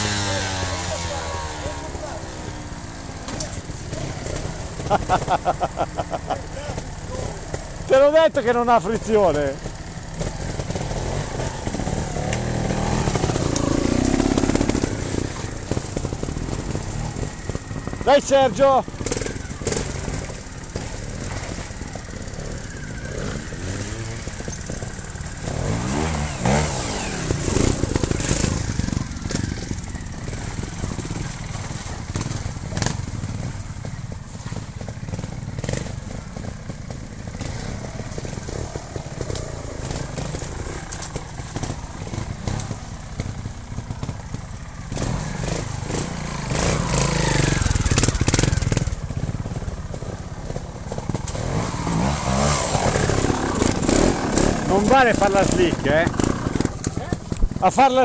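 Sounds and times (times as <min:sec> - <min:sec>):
motorcycle engines revving: 0:00.0 - 0:58.0.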